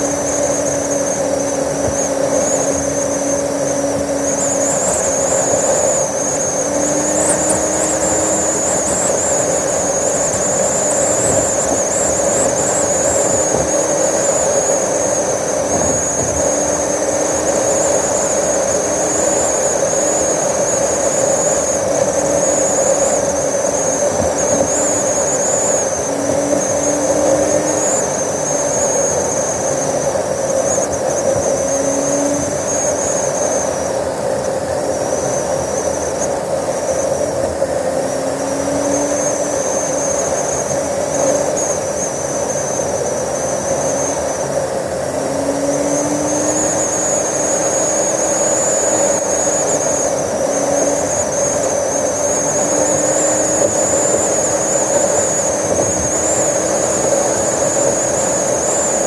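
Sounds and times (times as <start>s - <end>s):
car engine and road noise: 0.0s - 59.0s
thin high whine: 0.0s - 59.0s.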